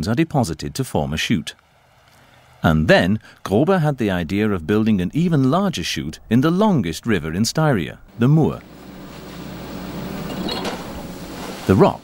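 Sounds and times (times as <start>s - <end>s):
excavator diesel engine running: 8.1s - 12.0s.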